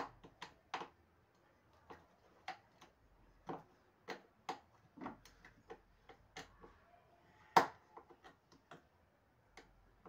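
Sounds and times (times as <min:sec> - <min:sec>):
hands clicking and tapping parts: 0:00.0 - 0:06.8, 0:07.5 - 0:10.0.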